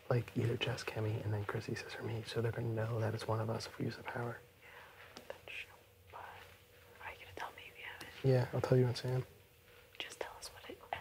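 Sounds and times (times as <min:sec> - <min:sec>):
faint steady hum: 0:00.0 - 0:11.0
person whispering: 0:05.3 - 0:08.4, 0:10.0 - 0:11.0.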